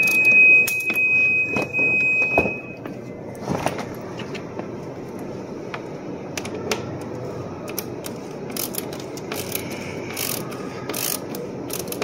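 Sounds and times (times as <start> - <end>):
steady low hum: 0.0 - 12.0
ratcheting wrench clicking: 7.7 - 12.0.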